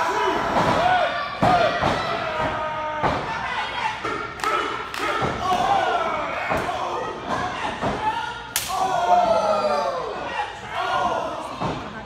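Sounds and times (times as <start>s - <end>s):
people shouting: 0.0s - 11.8s.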